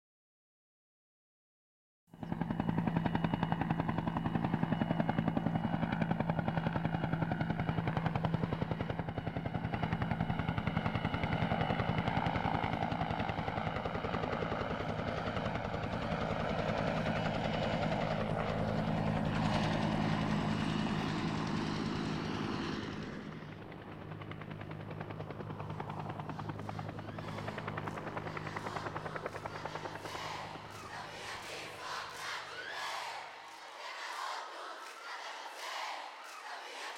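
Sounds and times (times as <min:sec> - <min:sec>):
helicopter rotor chop: 0:02.2 - 0:36.9.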